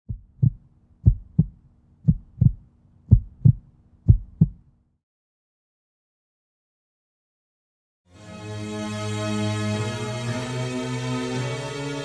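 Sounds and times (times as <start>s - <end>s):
heartbeat thumps: 0.1s - 4.6s.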